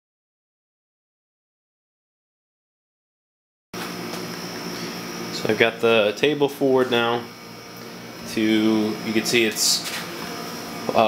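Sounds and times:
box fan humming: 3.8s - 11.0s.

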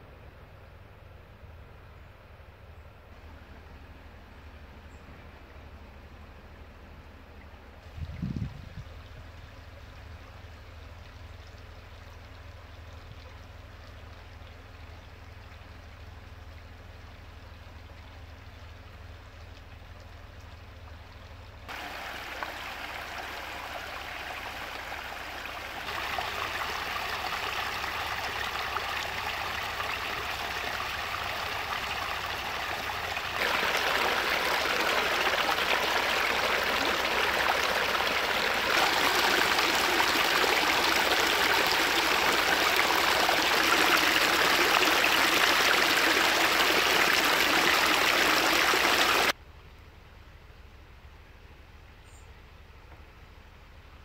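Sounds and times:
brook water running over stones: 7.3s - 49.4s.

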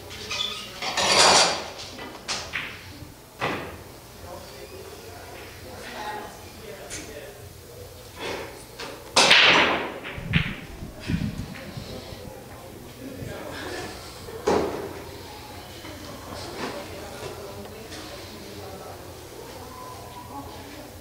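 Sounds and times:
faint background talk: 0.0s - 21.0s
pool balls clacking: 0.9s - 3.9s, 8.4s - 13.5s
cue striking pool ball: 9.1s - 12.4s.

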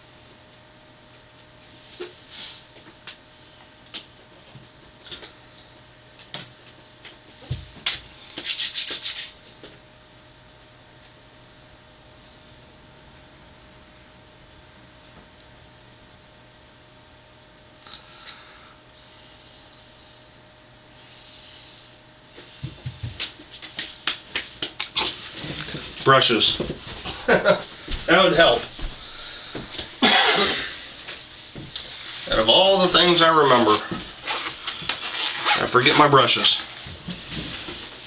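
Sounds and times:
scratchy rubbing strokes: 8.4s - 9.4s.

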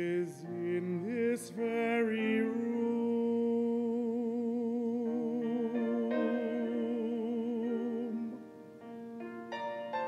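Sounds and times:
man singing a long note: 0.0s - 8.5s.

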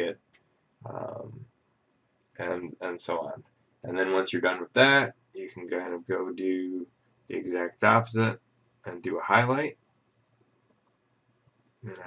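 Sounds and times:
man talking: 0.9s - 1.4s, 2.4s - 9.7s.

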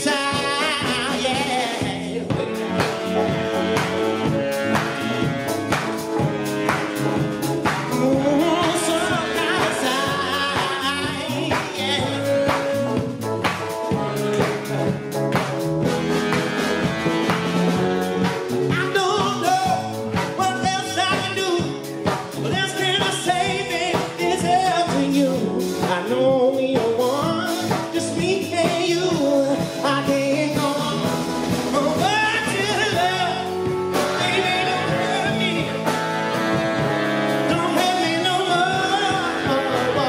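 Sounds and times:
man singing: 0.0s - 3.0s, 7.7s - 13.1s, 18.6s - 36.0s, 37.3s - 40.0s
soul band playing: 0.0s - 40.0s.

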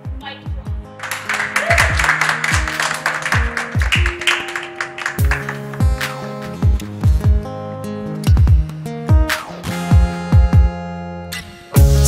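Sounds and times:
audience clapping and cheering: 1.0s - 6.6s
pop music with drum beat: 1.5s - 7.5s, 8.3s - 10.8s, 11.8s - 12.0s.

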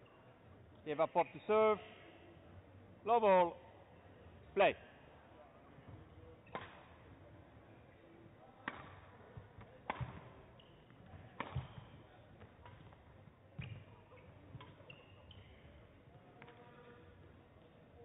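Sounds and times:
court shoes squeaking: 5.7s - 18.0s
rackets hitting shuttlecock: 6.4s - 7.1s, 8.6s - 16.7s.

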